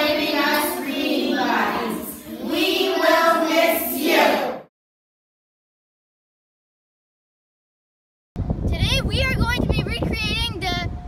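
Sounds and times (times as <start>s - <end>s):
children singing: 0.0s - 4.7s.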